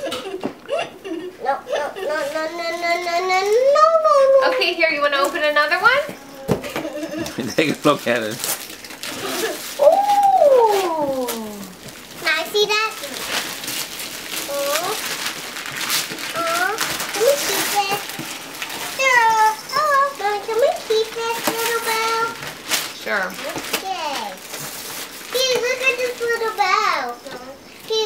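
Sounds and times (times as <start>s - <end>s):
wrapping paper rustling: 6.8s - 28.0s
baby and children squealing: 9.1s - 11.5s.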